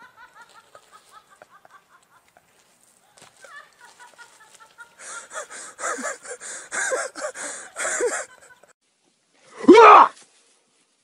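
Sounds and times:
person laughing: 0.0 - 2.4, 3.4 - 8.7.

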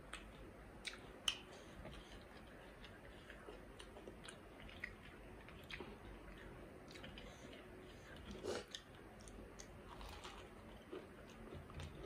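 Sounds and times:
faint chewing: 0.0 - 12.0.

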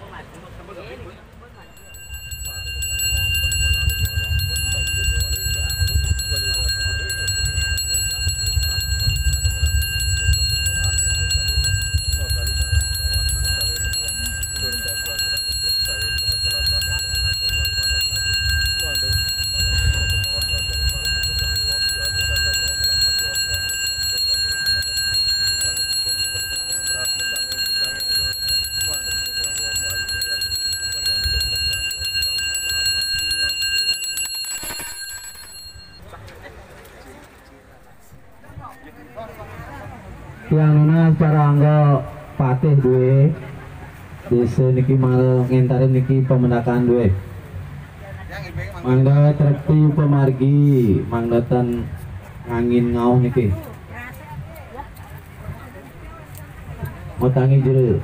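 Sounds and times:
brass handbells ringing: 1.6 - 36.3.

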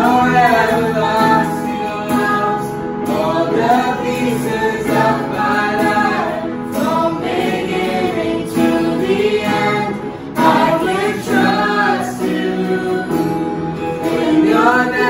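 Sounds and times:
electronic keyboard: 0.0 - 15.0
man and woman singing: 0.0 - 15.0
strummed acoustic guitar: 0.0 - 15.0.

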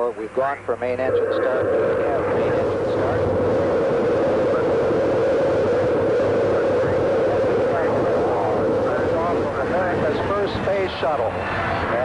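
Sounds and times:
rocket engines roaring: 0.0 - 12.0.

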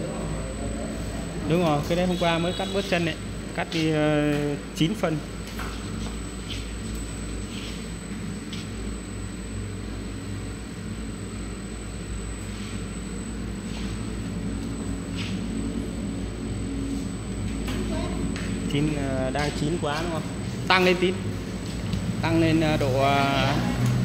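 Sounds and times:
machine motor hum and rumble: 0.0 - 24.0.

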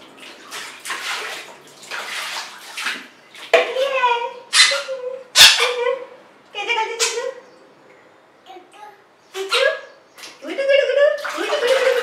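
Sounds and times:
water splashing into plastic tub: 0.0 - 4.1, 10.2 - 12.0.

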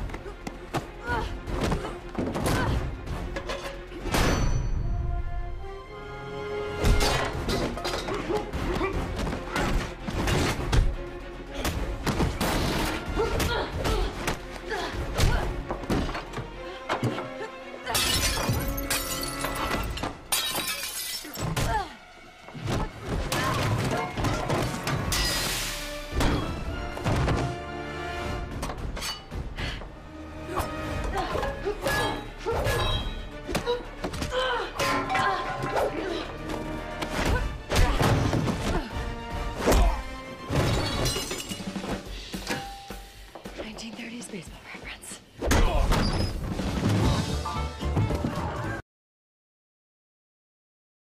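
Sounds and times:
background music: 0.0 - 48.8
glass shattering: 17.9 - 21.6, 24.2 - 25.8, 40.5 - 41.8.

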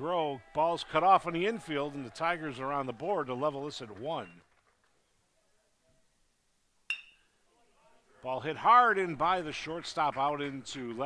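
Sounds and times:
metal bat hitting ball: 6.9 - 7.3.

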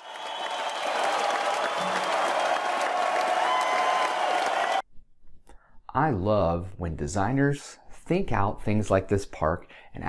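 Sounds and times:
audience applauding: 0.0 - 4.8.

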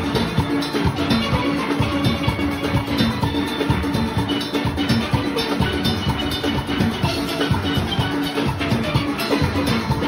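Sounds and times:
drum and percussion beat: 0.0 - 10.0.

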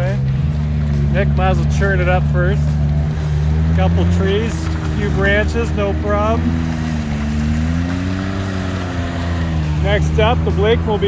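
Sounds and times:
off-road vehicle engine running: 0.0 - 11.0.

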